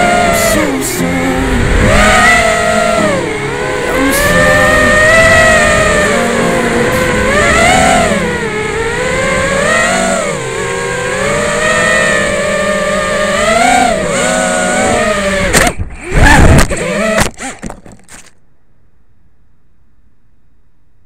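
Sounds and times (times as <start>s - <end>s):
quadcopter motors whining: 0.0s - 17.7s.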